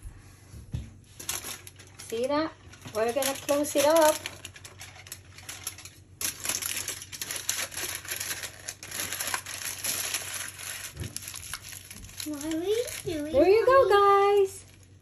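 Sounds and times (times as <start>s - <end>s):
aluminium foil crinkling: 1.1s - 15.0s.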